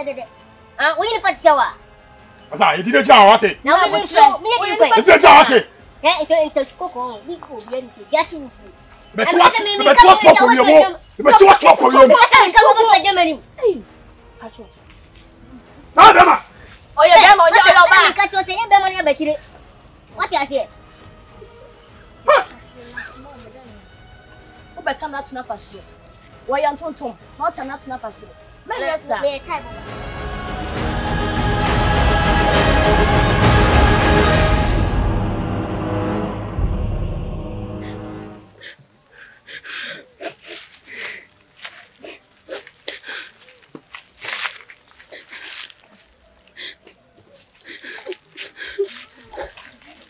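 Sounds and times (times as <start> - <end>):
high-pitched pulsing trill: 35.1 - 38.6.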